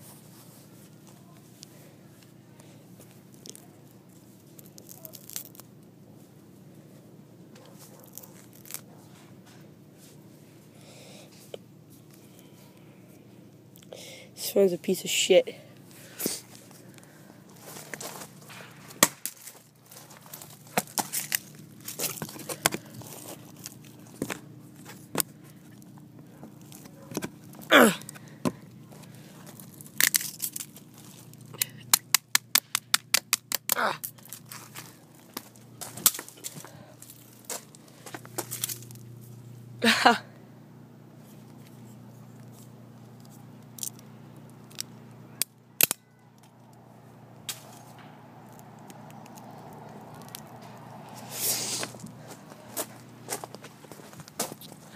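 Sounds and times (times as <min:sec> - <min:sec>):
low steady hum: 0:00.0 - 0:54.9
plastic and glass cracking: 0:04.6 - 0:05.7, 0:19.0 - 0:23.8, 0:29.6 - 0:37.8.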